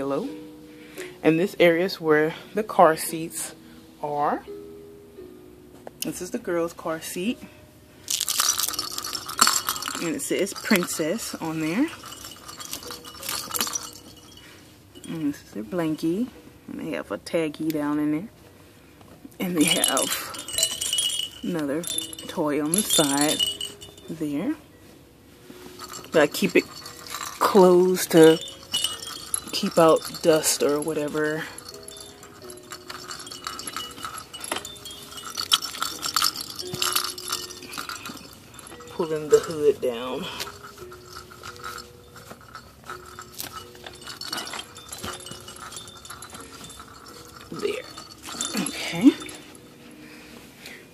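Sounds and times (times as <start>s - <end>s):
light clinks: 8.0s - 16.2s, 19.4s - 24.4s, 25.5s - 50.1s.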